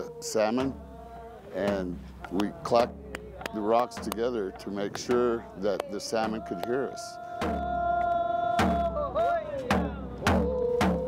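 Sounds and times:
person singing long note: 0:00.0 - 0:11.0
deep hand drum strikes: 0:07.4 - 0:08.0.

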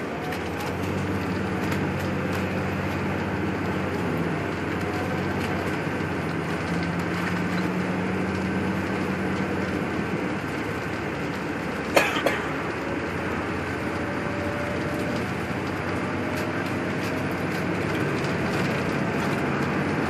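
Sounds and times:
car engine drone: 0:00.0 - 0:20.0
road noise: 0:00.0 - 0:20.0.

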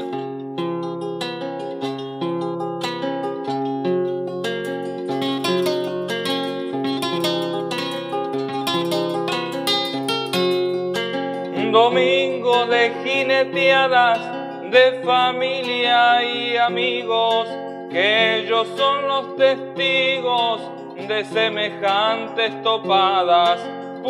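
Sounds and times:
acoustic guitar playing: 0:00.0 - 0:24.0
man singing: 0:11.5 - 0:23.8.

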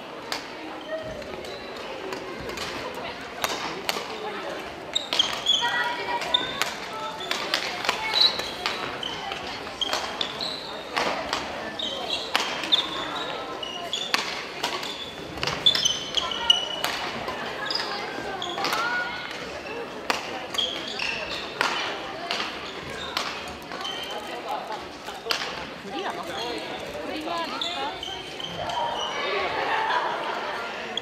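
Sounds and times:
murmur of voices: 0:00.0 - 0:31.0
sneakers squeaking: 0:00.6 - 0:29.6
rackets striking shuttlecock: 0:03.4 - 0:04.1, 0:14.0 - 0:17.1.

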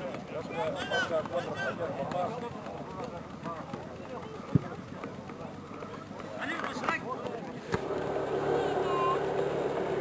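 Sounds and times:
voices and shouts of spectators: 0:00.0 - 0:10.0.

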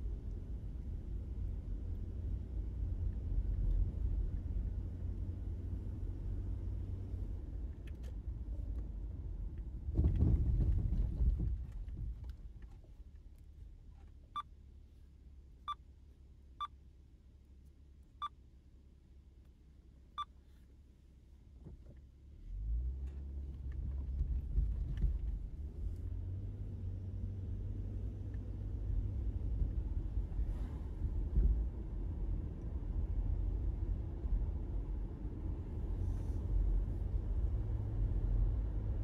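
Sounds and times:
car road and engine rumble: 0:00.0 - 0:39.0.

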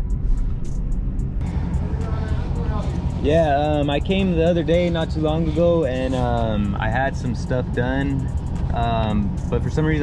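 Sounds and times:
car engine rumbling: 0:00.0 - 0:10.0.

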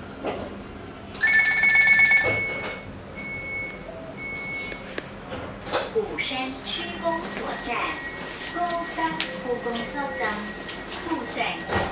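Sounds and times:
short beeps: 0:01.2 - 0:04.8.

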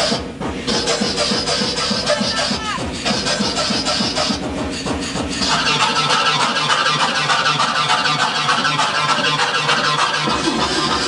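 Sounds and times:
harsh electronic music: 0:00.0 - 0:11.0.

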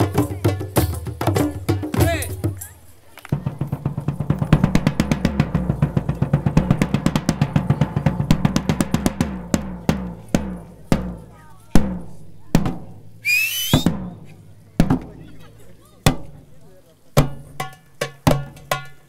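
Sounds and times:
percussion group drumming: 0:00.0 - 0:15.4, 0:17.2 - 0:19.0
high rising call: 0:13.2 - 0:13.9.

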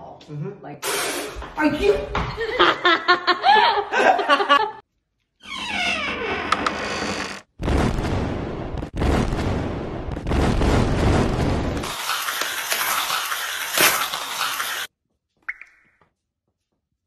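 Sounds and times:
people laughing heartily: 0:02.3 - 0:04.8.

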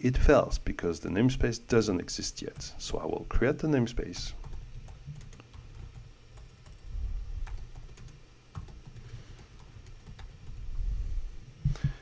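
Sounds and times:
computer keyboard typing: 0:04.1 - 0:10.8.

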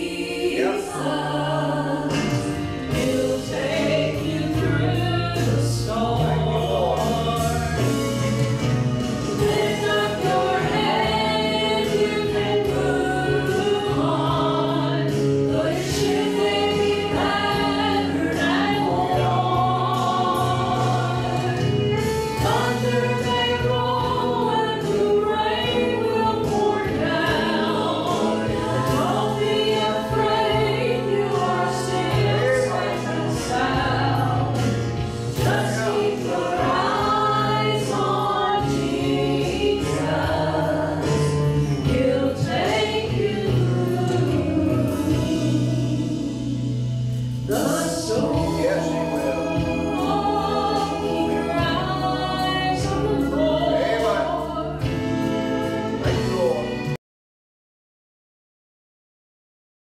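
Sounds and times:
women singing in harmony: 0:00.0 - 0:56.8
low bass notes: 0:00.0 - 0:57.0.

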